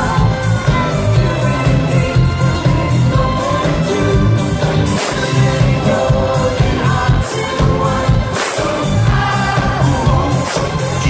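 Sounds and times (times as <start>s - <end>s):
live pop song over loudspeakers: 0.0s - 11.0s.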